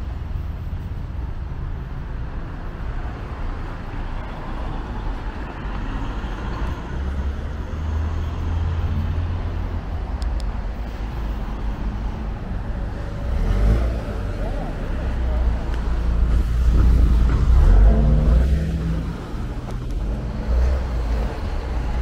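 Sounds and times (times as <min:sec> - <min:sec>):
cars passing: 0:00.0 - 0:22.0
low engine rumble: 0:08.5 - 0:22.0.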